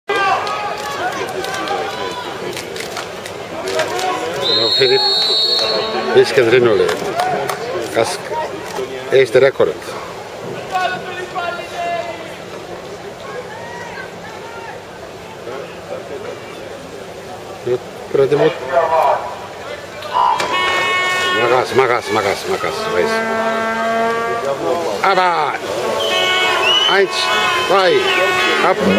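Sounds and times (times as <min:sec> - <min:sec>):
crowd voices talking: 0:00.1 - 0:28.9.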